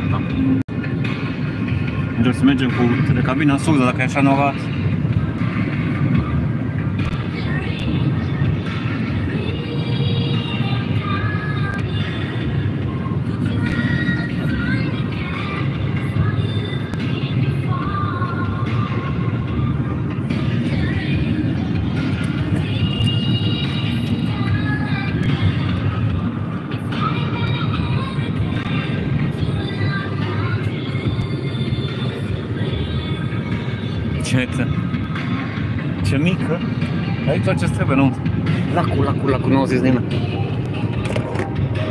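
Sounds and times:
music playing: 0.0 - 41.9
road and engine noise in car: 0.0 - 41.9.

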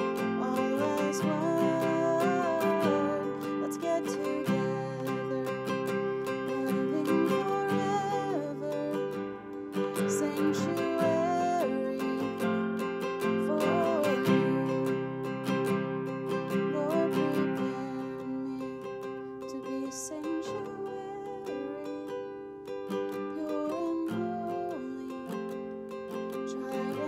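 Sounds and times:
classical guitar strumming: 0.0 - 27.0
woman singing: 0.0 - 27.0.

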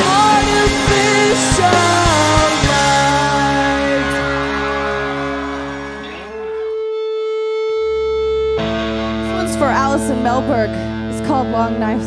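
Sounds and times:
band music: 0.0 - 12.0
electric guitar sliding pitches: 0.0 - 12.0.

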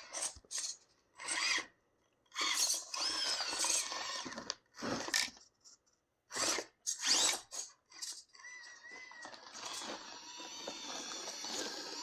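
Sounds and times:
high motor and gear whine: 8.7 - 12.0.

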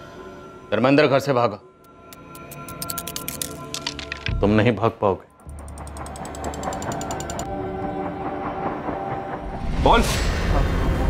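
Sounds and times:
rapid mechanical ticking: 5.4 - 7.5.

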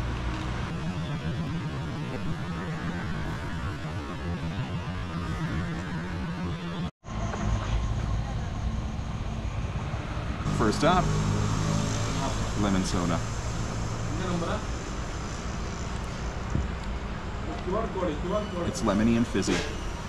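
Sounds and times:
steady high-pitched tone: 0.0 - 20.0.

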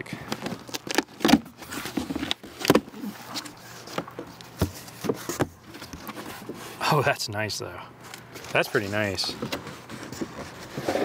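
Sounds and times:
packing tape ripping: 0.4 - 2.7
cardboard flaps rustling: 8.4 - 11.0.

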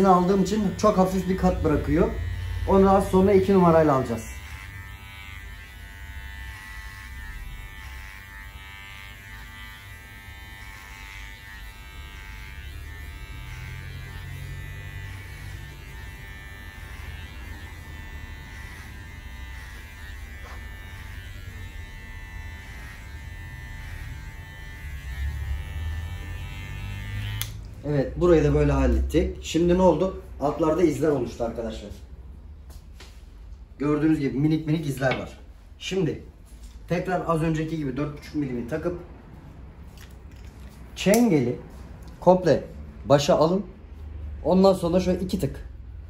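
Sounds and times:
electric hair clipper buzzing: 0.0 - 27.8.

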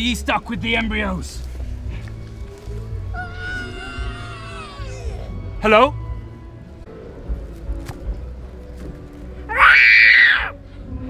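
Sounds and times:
dinosaur screech: 9.5 - 10.5.

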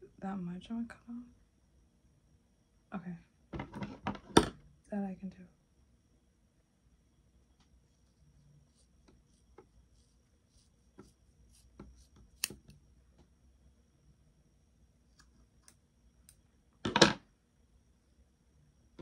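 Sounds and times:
shears snipping hair: 11.0 - 12.7.

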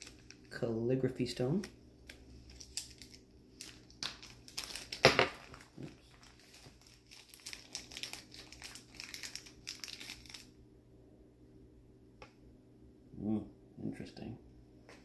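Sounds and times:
plastic bag crinkling: 0.0 - 0.6, 2.0 - 10.6.

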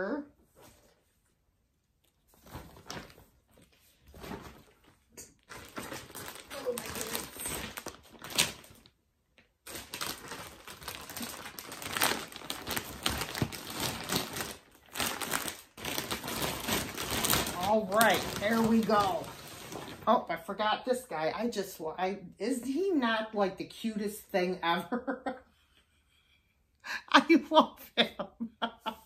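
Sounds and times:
plastic bag crinkling: 2.4 - 20.1.

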